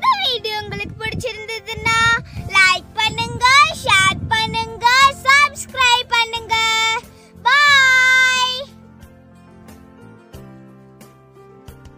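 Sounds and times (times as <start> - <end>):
girl singing: 0.0 - 8.7.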